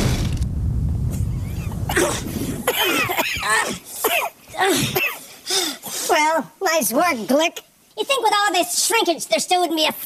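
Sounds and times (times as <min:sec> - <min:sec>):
rushing noise: 0:00.0 - 0:03.2
men coughing and spluttering: 0:01.8 - 0:05.2.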